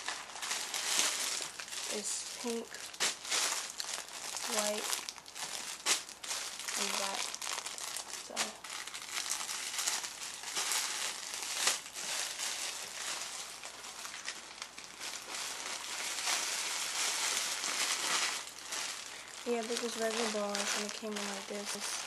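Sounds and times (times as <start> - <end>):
plastic bag crinkling: 0.0 - 22.0.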